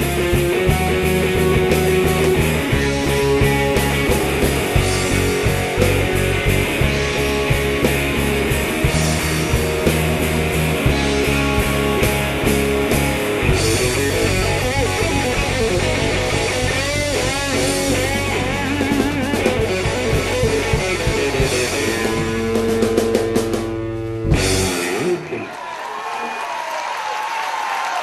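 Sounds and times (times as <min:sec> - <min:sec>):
drum and cymbal hits: 0:00.0 - 0:25.1
lead guitar bent notes: 0:00.0 - 0:25.4
live rock band playing: 0:00.0 - 0:25.6.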